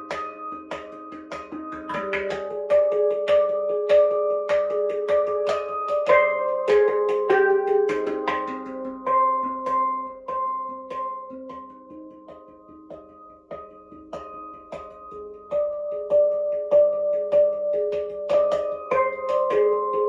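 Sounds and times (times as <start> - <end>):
handpan ringing notes: 0.0 - 20.0.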